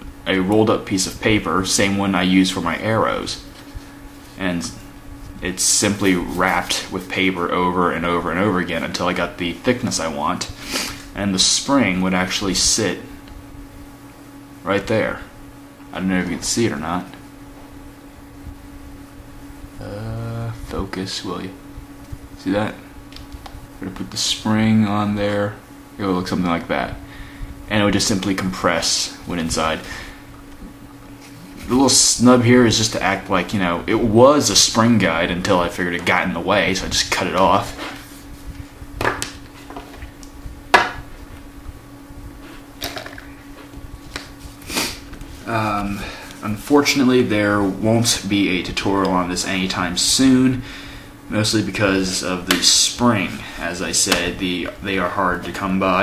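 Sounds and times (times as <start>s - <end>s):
steady low hum: 0.0s - 56.0s
person saying uh: 19.8s - 21.5s.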